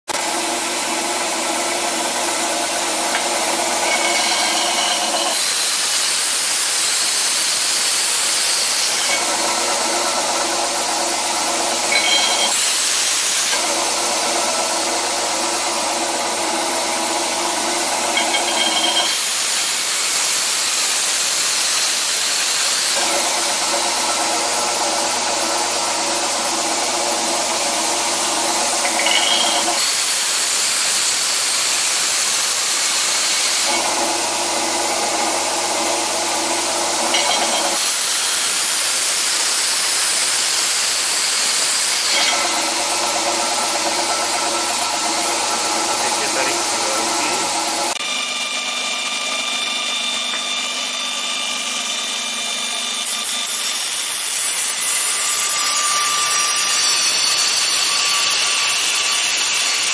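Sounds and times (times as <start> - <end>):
belt grinder motor hum: 0.2 - 53.5
metal grinding hiss: 2.7 - 15.4, 17.8 - 23.7, 28.2 - 34.0, 37.0 - 48.0, 53.1 - 59.9.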